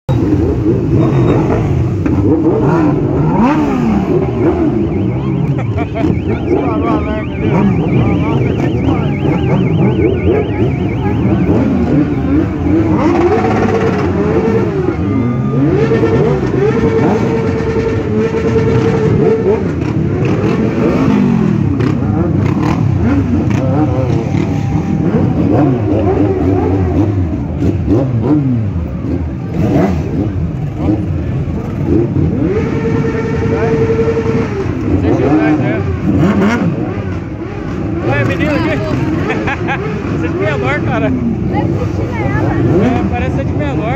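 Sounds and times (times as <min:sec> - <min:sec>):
crowd voices: 0:00.1 - 0:43.9
motorcycle engines revving: 0:00.1 - 0:43.9.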